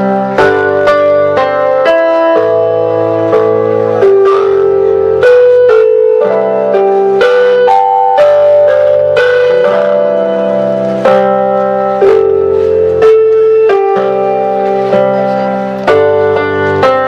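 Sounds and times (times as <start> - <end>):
slow piano music: 0.0 - 17.0.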